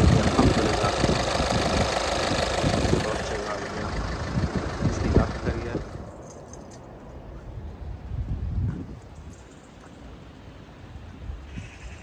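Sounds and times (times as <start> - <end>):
diesel engine idling with knocks: 0.0 - 6.8.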